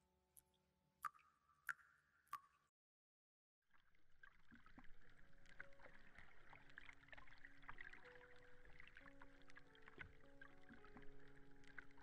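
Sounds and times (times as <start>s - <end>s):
watery clicks and plinks: 0.3s - 2.7s, 3.7s - 12.0s.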